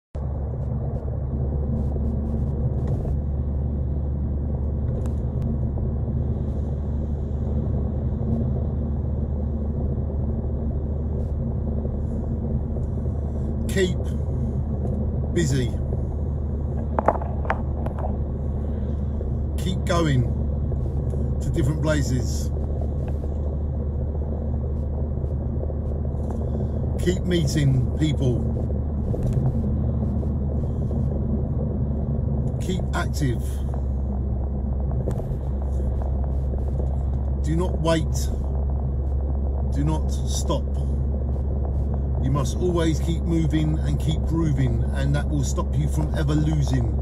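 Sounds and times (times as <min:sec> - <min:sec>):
steady low rumble: 0:00.0 - 0:47.0.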